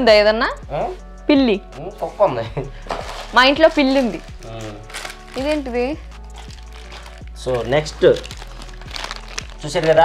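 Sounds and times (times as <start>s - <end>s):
wrapping crinkling and rustling: 2.8s - 10.0s.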